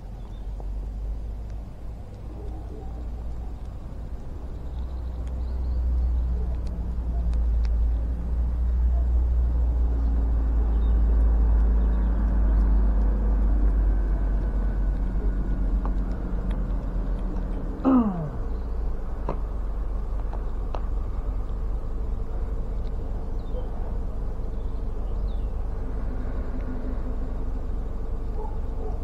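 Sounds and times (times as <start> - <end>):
low engine rumble: 0.0 - 29.0
faint clicks: 0.2 - 8.9.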